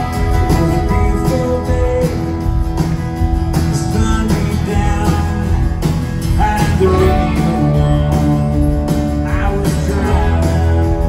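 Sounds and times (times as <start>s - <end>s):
electric guitars: 0.0s - 11.0s
live rock band playing: 0.0s - 11.0s.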